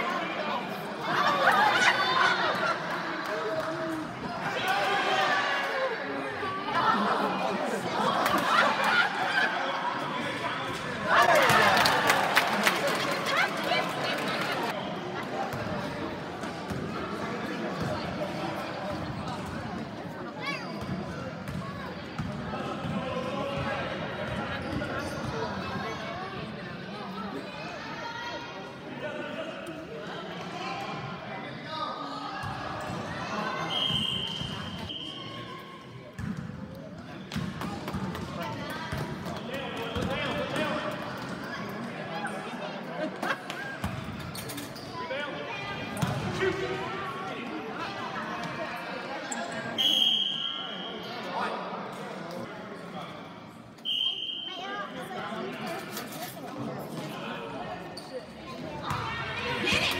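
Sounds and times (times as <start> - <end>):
spectators' voices and shouts: 0.0 - 59.9
referee's whistle blasts: 33.6 - 35.4, 49.8 - 51.1, 53.8 - 54.7.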